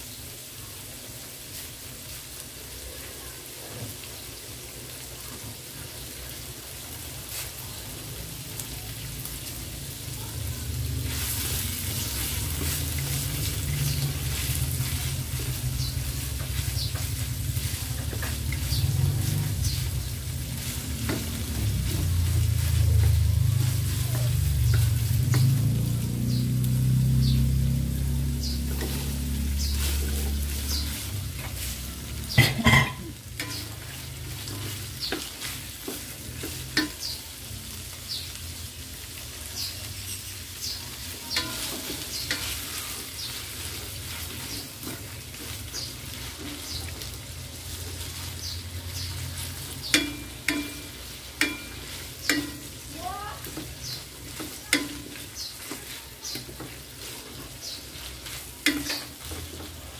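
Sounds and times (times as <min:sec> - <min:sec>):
meat and vegetables sizzling in wok: 0:00.0 - 0:59.9
spatula stirring and scraping: 0:10.3 - 0:38.2, 0:39.6 - 0:59.9.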